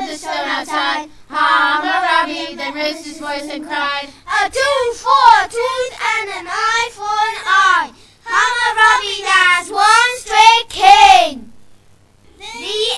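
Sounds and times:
young children singing: 0:00.0 - 0:11.5, 0:12.4 - 0:12.9.

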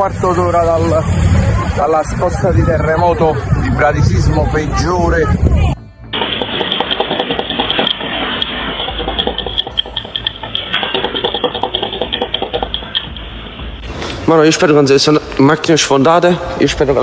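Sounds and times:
loose objects rattling: 0:06.2 - 0:13.7.

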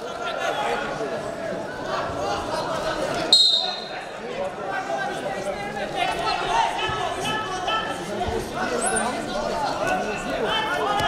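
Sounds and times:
shouting and crowd voices echoing: 0:00.0 - 0:11.0.

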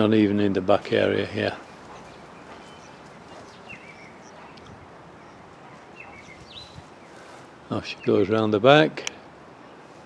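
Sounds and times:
steady low hiss: 0:00.0 - 0:10.0
faint bird chirps: 0:01.8 - 0:07.3.

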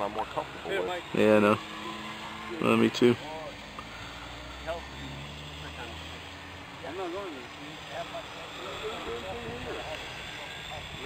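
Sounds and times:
drone propellers buzzing: 0:00.0 - 0:11.0
faint voices: 0:00.0 - 0:11.0.

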